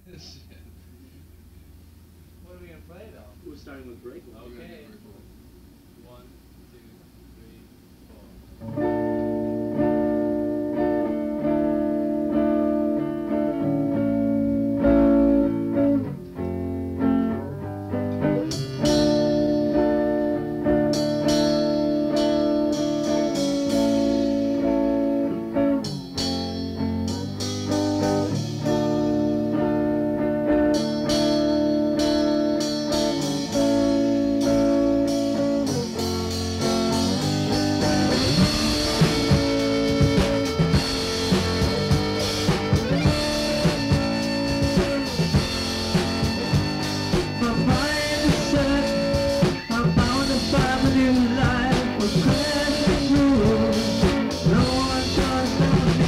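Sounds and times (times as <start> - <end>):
rock guitar chords strummed: 8.5 - 56.0.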